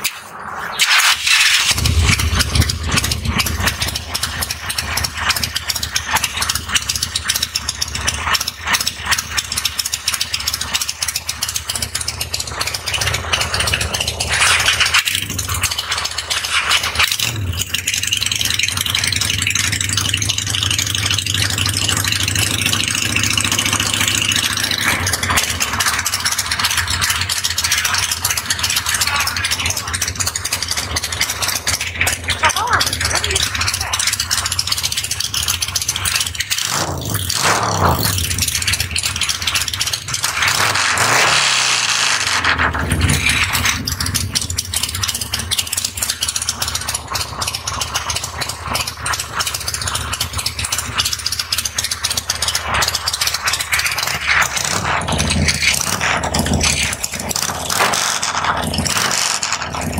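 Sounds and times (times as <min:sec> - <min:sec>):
motorcycle engine running loudly: 0:00.0 - 0:59.9
motorcycle engine idling: 0:01.7 - 0:41.2, 0:42.0 - 0:59.9.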